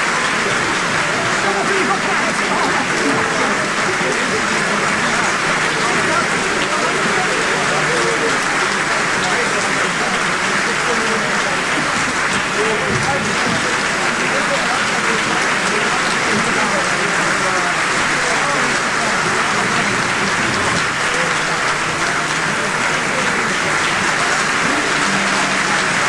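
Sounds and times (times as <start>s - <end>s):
audience applauding: 0.0s - 26.0s
voices: 0.0s - 26.0s.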